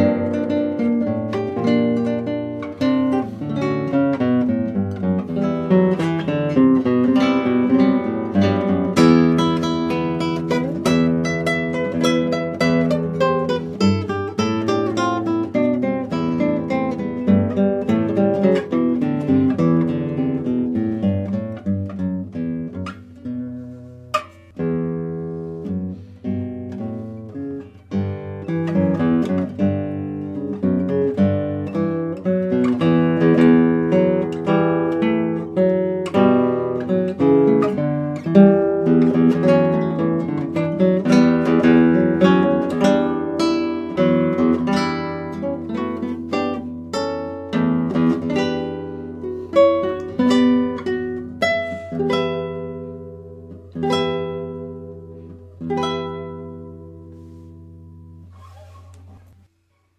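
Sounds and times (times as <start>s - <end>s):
solo acoustic guitar: 0.0s - 59.9s.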